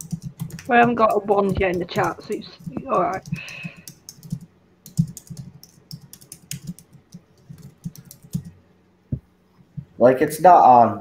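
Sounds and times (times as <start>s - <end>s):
keyboard typing clicks: 0.0s - 8.5s.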